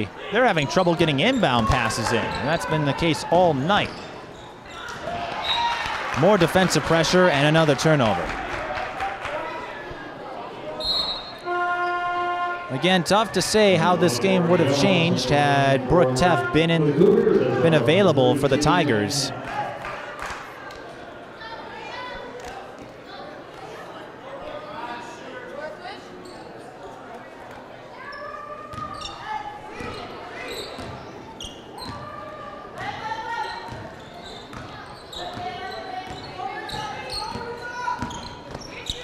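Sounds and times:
scattered voices: 0:13.0 - 0:20.0.

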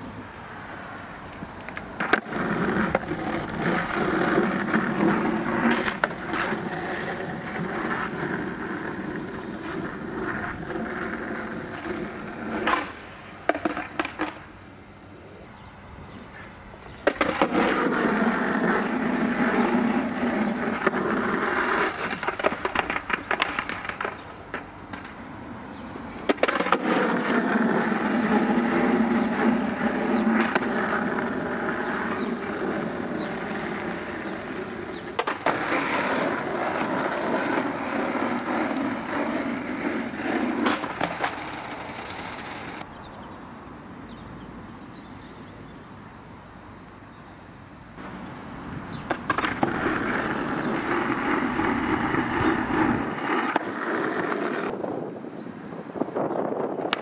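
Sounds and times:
skateboard wheels rolling on asphalt: 0:00.0 - 0:57.0
skateboard clacking on ground: 0:01.3 - 0:14.6, 0:17.0 - 0:42.9, 0:48.9 - 0:55.2, 0:56.7 - 0:57.0.

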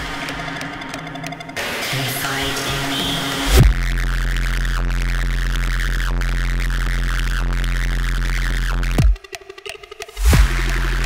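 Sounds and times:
deep bass drone: 0:00.0 - 0:09.2, 0:10.2 - 0:11.0.

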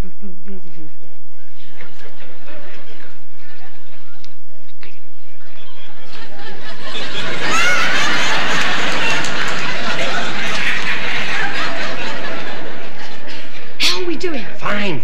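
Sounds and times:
studio audience laughing: 0:01.6 - 0:04.2, 0:05.4 - 0:13.8.

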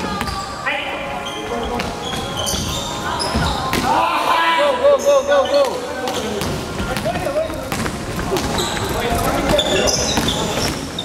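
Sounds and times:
sneakers squeaking on court: 0:00.0 - 0:03.9, 0:05.0 - 0:11.0
basketball bouncing on wooden floor: 0:06.4 - 0:08.8.

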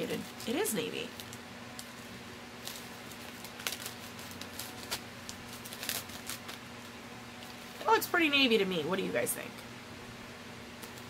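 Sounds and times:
plastic bag crinkling: 0:00.0 - 0:08.1.

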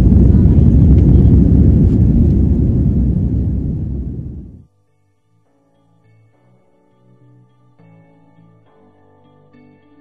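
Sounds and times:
airliner cabin rumble: 0:00.0 - 0:04.6.

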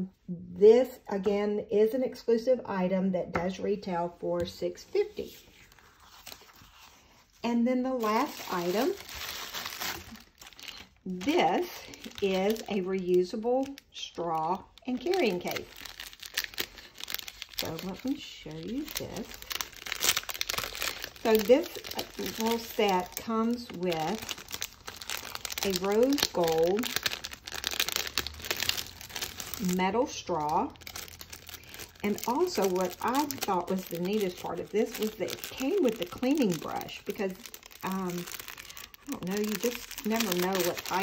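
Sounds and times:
plastic packaging crinkling: 0:05.1 - 0:41.0.

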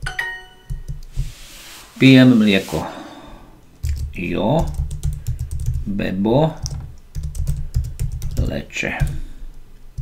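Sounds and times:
bright correct-answer chime: 0:00.0 - 0:00.7.

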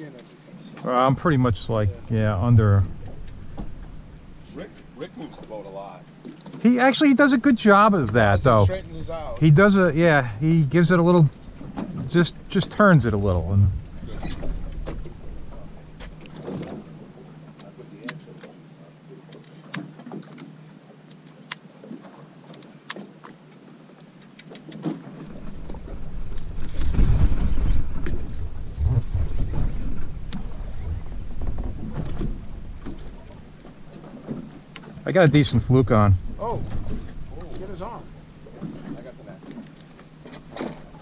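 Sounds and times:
water lapping against boat hull: 0:00.0 - 0:41.0
wind rumble on microphone: 0:12.8 - 0:16.9, 0:25.2 - 0:33.3, 0:35.4 - 0:37.9.

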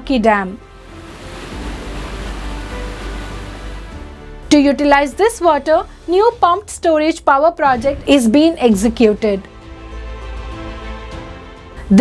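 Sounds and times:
background music with deep bass: 0:00.0 - 0:12.0
splashing churning water: 0:00.6 - 0:06.1.

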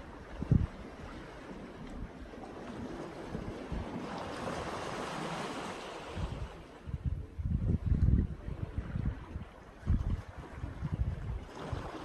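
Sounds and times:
small sea waves washing in: 0:00.0 - 0:12.0
wind rumble on microphone: 0:00.0 - 0:12.0.

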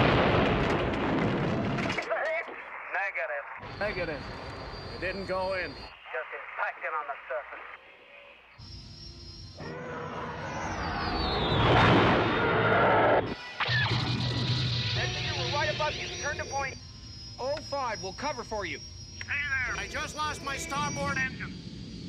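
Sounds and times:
spacecraft engine howl: 0:08.7 - 0:22.0.

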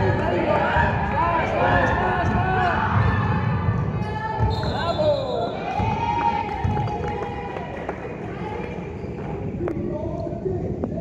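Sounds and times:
voices of players and spectators: 0:00.0 - 0:11.0.

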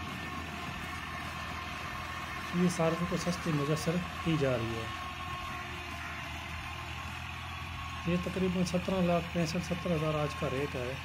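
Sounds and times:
rotary tiller working soil: 0:00.0 - 0:11.0
tractor engine running: 0:00.0 - 0:11.0.

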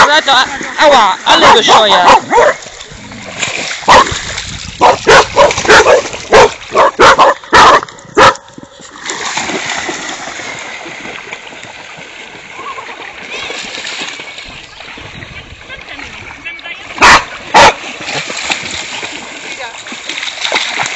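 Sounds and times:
dogs splashing through water: 0:00.0 - 0:20.9
dog barking sharply: 0:01.4 - 0:02.6, 0:03.9 - 0:04.1, 0:04.8 - 0:08.4, 0:17.0 - 0:17.8.

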